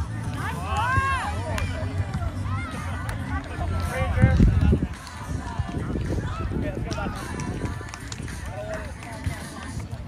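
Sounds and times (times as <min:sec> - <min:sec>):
people talking indistinctly: 0:00.0 - 0:10.0
wind rumble on microphone: 0:04.0 - 0:10.0.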